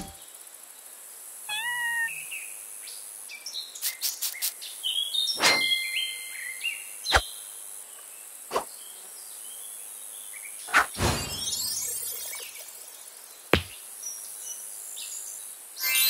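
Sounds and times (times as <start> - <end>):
background hiss: 0.0 - 5.4
short squeaky call: 1.5 - 2.2
cartoon thumps: 13.6 - 13.8.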